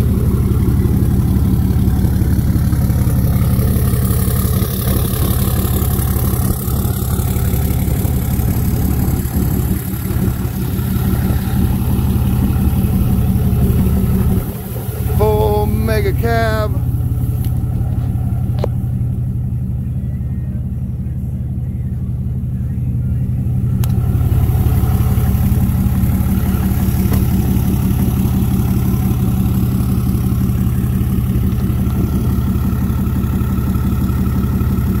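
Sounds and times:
diesel engine idling: 0.0s - 35.0s.

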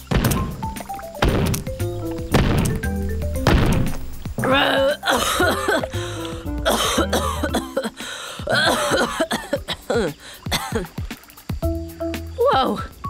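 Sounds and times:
background music: 0.0s - 13.0s
cartoon voice coughing: 6.7s - 7.9s, 8.5s - 10.9s.

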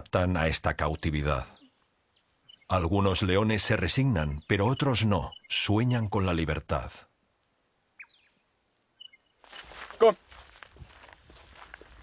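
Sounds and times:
faint outdoor rustling: 0.0s - 12.0s
footsteps: 9.4s - 12.0s
person calling out: 10.0s - 10.2s.

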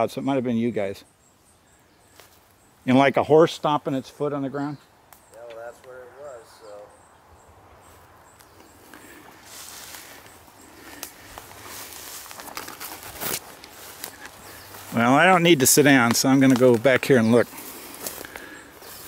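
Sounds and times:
footsteps through dry grass: 7.8s - 19.0s
twigs cracking: 8.3s - 19.0s.

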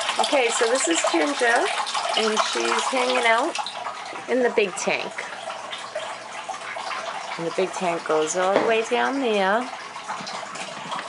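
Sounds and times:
water trickling and splashing: 0.0s - 11.0s.

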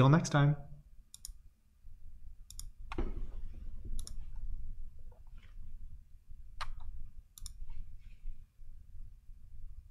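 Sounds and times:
low steady hum: 0.0s - 9.9s.

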